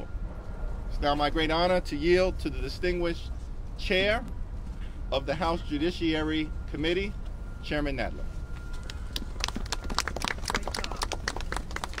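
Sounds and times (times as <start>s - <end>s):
people clapping: 8.8s - 12.0s.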